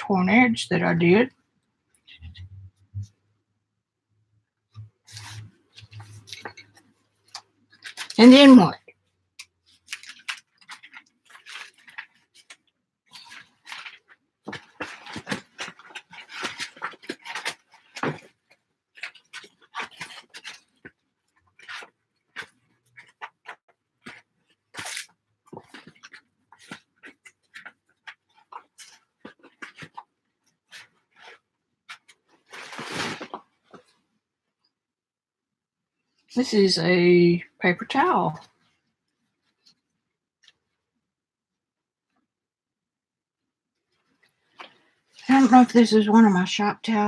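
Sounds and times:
paper rustling: 0:05.1 - 0:08.6, 0:09.6 - 0:34.0.

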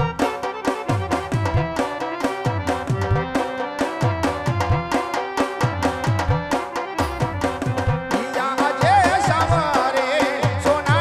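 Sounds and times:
sustained melody instruments: 0:00.0 - 0:10.2
hand drums playing a rhythm: 0:00.0 - 0:11.0.

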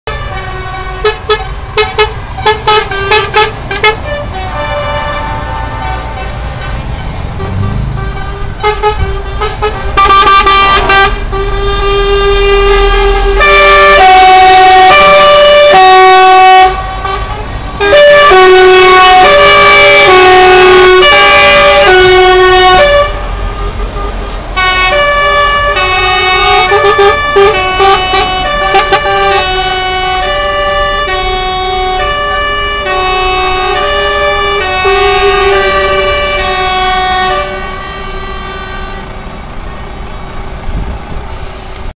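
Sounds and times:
truck air horns playing a tune: 0:00.1 - 0:39.3
diesel trucks rumbling past: 0:00.1 - 0:41.9.

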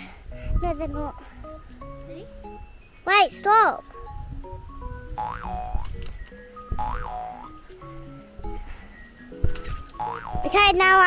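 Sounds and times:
light background music: 0:00.0 - 0:11.0
springy boing: 0:05.2 - 0:05.9, 0:06.8 - 0:07.5, 0:10.0 - 0:10.7.

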